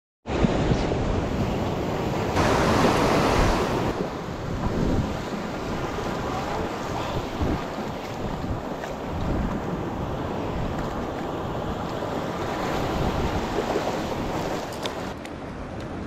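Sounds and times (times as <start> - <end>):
ocean surf breaking: 0.3 - 15.6
wind buffeting microphone: 0.3 - 16.0.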